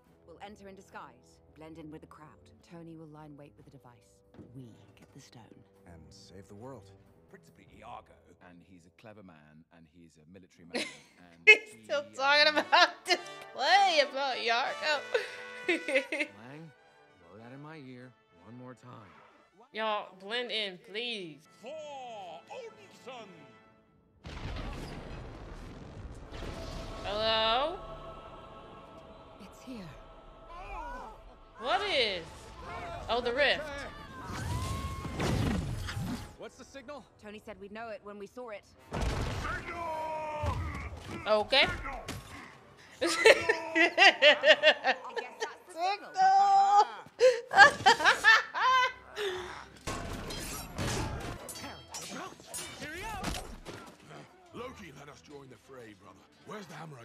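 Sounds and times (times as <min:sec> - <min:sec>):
woman laughing: 0:10.8 - 0:11.8, 0:12.4 - 0:13.5, 0:14.6 - 0:16.4, 0:43.0 - 0:49.7.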